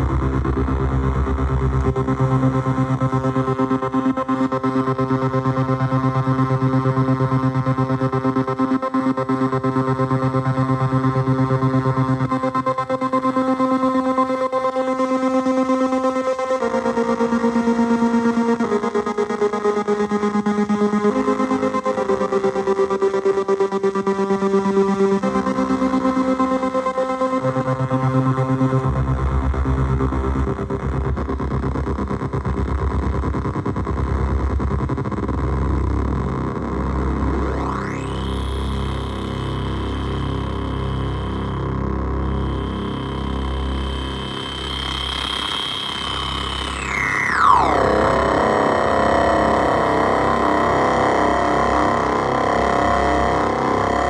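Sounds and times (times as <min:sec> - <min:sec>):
gritty stuttering synthesizer note: 0:33.8 - 0:54.0
repeating low pulse: 0:37.0 - 0:54.0.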